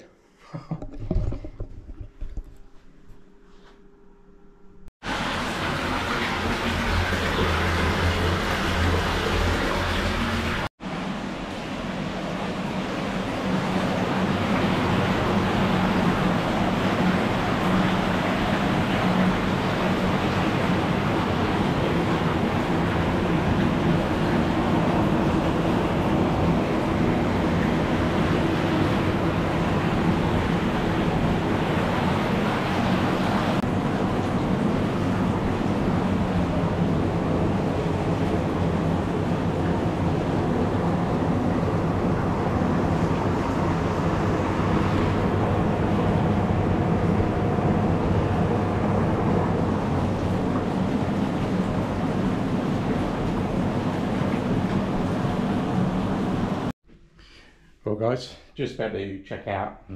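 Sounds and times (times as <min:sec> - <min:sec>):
pump humming: 0:03.9 - 0:56.7
water churning and bubbling: 0:05.0 - 0:10.7, 0:11.8 - 0:56.7.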